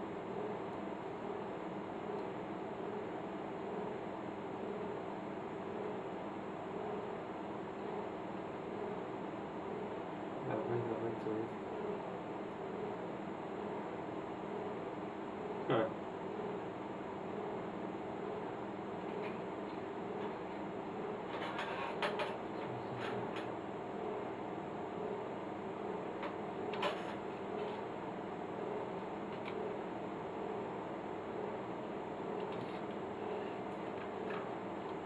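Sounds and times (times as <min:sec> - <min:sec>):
low electrical hum: 0:00.0 - 0:35.0.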